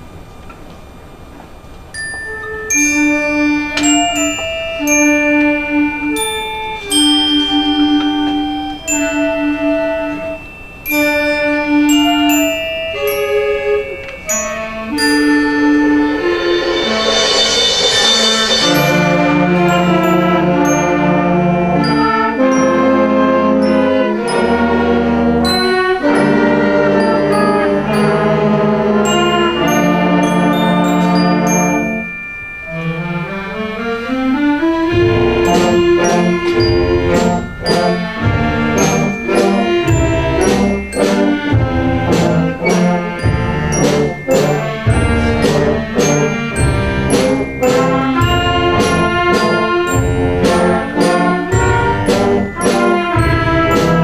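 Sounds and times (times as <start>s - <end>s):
struck mallet notes: 1.9s - 54.0s
concert band playing: 2.3s - 54.0s.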